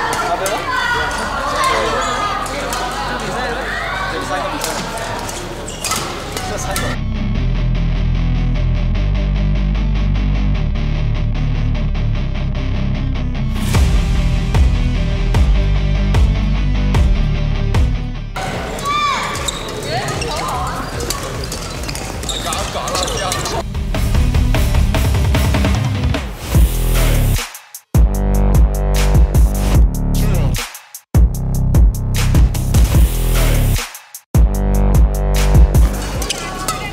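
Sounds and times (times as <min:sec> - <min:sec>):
hall chatter: 0:00.0 - 0:07.0, 0:18.4 - 0:23.6, 0:35.9 - 0:36.9
voices echoing: 0:00.0 - 0:07.0, 0:18.4 - 0:23.6, 0:36.0 - 0:36.9
sports shoes squeaking on floor: 0:04.7 - 0:07.0, 0:18.8 - 0:23.6.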